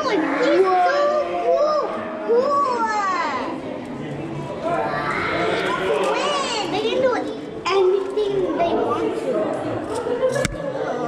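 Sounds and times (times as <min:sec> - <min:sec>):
children and adults talking: 0:00.0 - 0:11.0.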